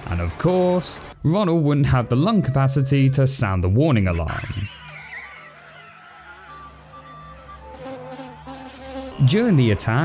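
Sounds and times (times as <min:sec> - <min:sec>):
horn thin buzzing note: 0:06.4 - 0:09.6.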